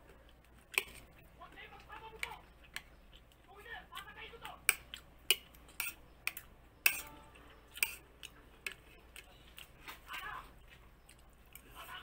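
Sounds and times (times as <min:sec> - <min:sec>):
cutlery clinking on plate: 0:04.7 - 0:08.0.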